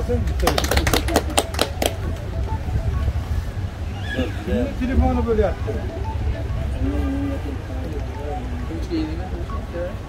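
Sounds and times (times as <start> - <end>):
steady low rumble: 1.0 - 3.9.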